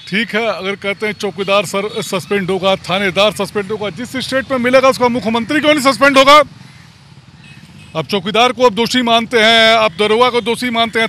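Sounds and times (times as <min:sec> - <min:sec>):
man speaking: 0:00.0 - 0:06.5, 0:07.9 - 0:11.0
faint road traffic: 0:00.0 - 0:11.0.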